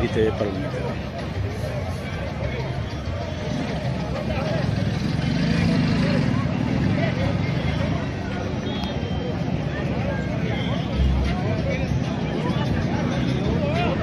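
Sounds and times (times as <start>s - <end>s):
distant crowd talking and calling: 0.0s - 14.0s.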